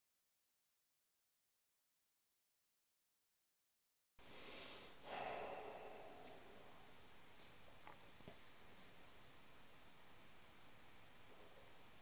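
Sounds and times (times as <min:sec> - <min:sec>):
person sighing: 0:04.4 - 0:06.9.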